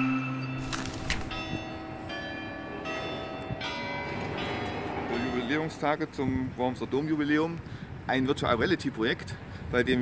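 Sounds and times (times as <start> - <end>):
church bells ringing: 0.0 - 6.2.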